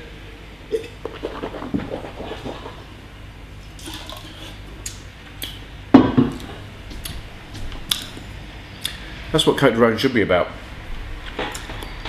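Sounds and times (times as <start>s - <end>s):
man slurping wine: 0.7s - 2.9s.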